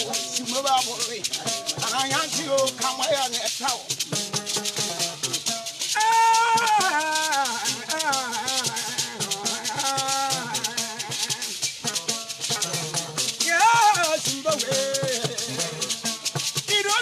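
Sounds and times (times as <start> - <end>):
man singing: 0.0 - 3.7, 5.8 - 17.0
hand-held shakers rattling: 0.0 - 17.0.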